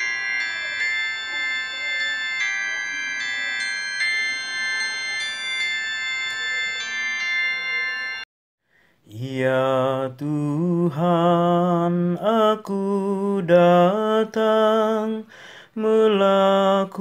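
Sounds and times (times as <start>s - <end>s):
keyboard melody of held notes: 0.0s - 8.2s.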